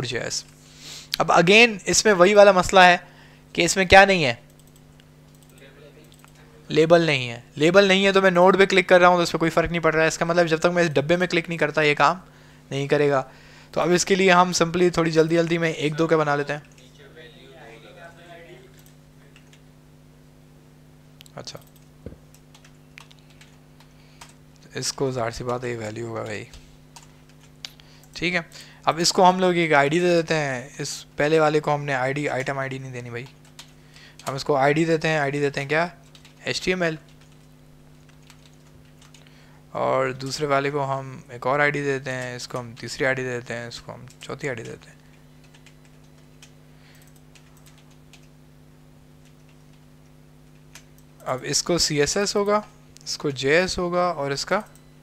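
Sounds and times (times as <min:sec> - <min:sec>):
low steady hum: 0:00.0 - 0:55.0
keyboard typing: 0:04.4 - 0:06.4, 0:18.6 - 0:19.6, 0:21.3 - 0:28.3, 0:32.1 - 0:34.6, 0:36.0 - 0:39.3, 0:43.7 - 0:48.4, 0:49.2 - 0:52.6, 0:54.4 - 0:54.9.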